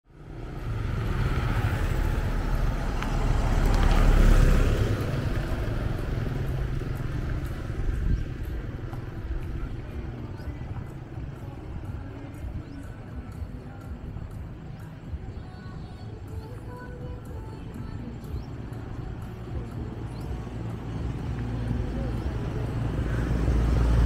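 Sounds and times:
street background noise: 0:00.0 - 0:24.0
vehicle passing close by: 0:00.1 - 0:13.3, 0:18.1 - 0:24.0.

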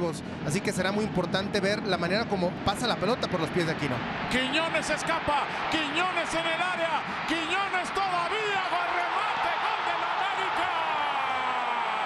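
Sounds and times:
stadium crowd cheering: 0:03.0 - 0:12.0.

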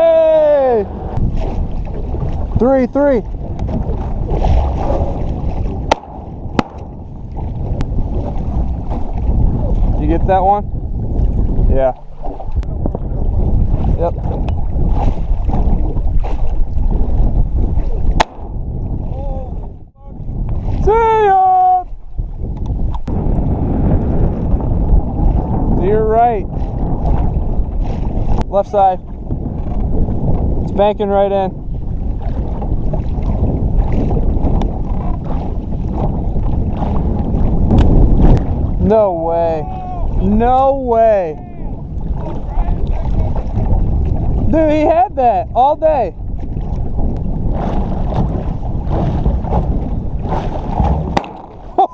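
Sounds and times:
water lapping against boat hull: 0:00.0 - 0:51.9
wind buffeting microphone: 0:00.0 - 0:51.9
sharp cracks: 0:05.9 - 0:07.1, 0:18.2 - 0:18.7, 0:51.1 - 0:51.9.

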